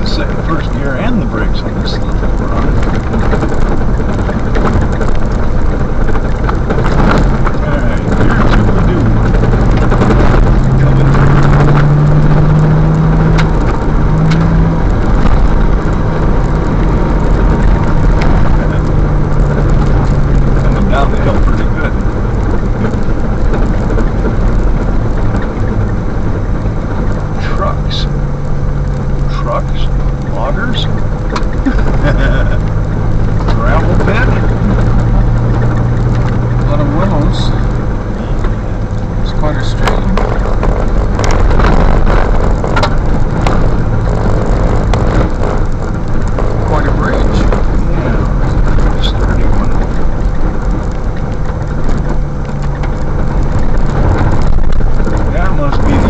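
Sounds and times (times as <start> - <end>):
engine hum: 0.0 - 56.0
tyres rumbling on gravel: 0.0 - 56.0.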